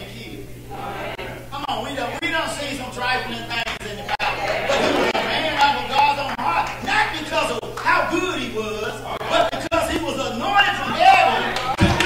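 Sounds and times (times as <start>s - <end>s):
man speaking over a microphone: 0.0s - 0.5s, 1.5s - 4.4s, 5.1s - 12.0s.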